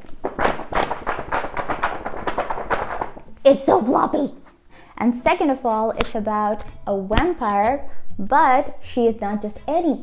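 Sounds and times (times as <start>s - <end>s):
paperback book pages flapping: 0.0s - 3.8s.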